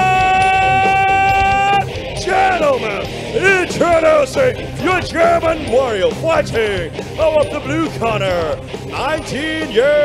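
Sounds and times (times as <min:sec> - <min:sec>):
announcer's long drawn-out shout: 0:00.0 - 0:02.9
background music: 0:00.0 - 0:10.0.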